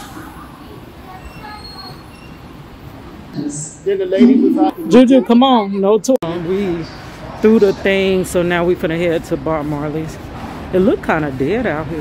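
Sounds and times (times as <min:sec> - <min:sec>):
faint high-pitched squeals: 0:01.0 - 0:02.6.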